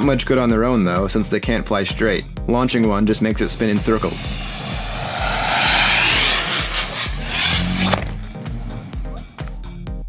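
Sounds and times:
rocket motor hissing: 0:03.9 - 0:08.2.

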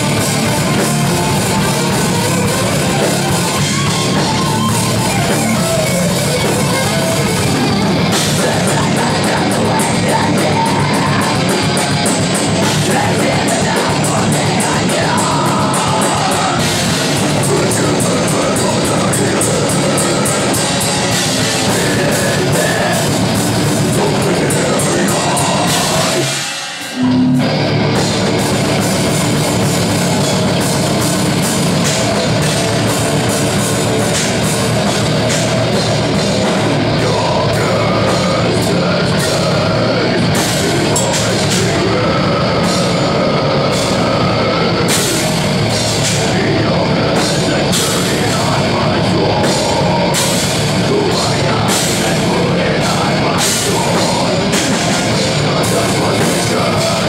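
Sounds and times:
death metal band playing: 0:00.0 - 0:57.0
distorted electric guitar: 0:00.0 - 0:57.0
drum kit: 0:00.0 - 0:57.0.

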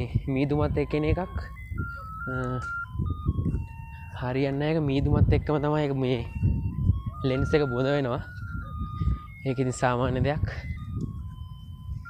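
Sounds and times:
electronic beeping jingle: 0:00.1 - 0:12.0.

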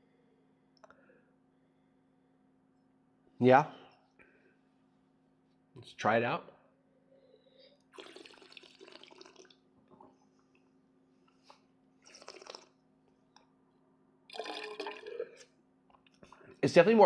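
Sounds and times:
wet slurping of wine: 0:07.9 - 0:09.6, 0:12.0 - 0:12.8, 0:14.3 - 0:15.5.

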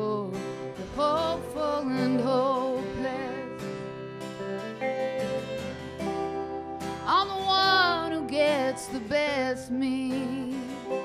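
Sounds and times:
woman singing with vibrato: 0:00.0 - 0:03.7, 0:07.0 - 0:11.0
acoustic guitar: 0:00.0 - 0:11.0
electric guitar: 0:00.0 - 0:11.0
violin: 0:00.0 - 0:11.0.

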